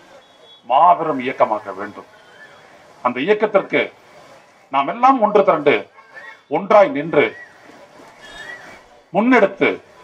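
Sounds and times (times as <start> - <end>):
man speaking into a microphone: 0.6 - 2.1, 3.0 - 4.0, 4.7 - 5.9, 6.5 - 7.5, 9.1 - 10.0.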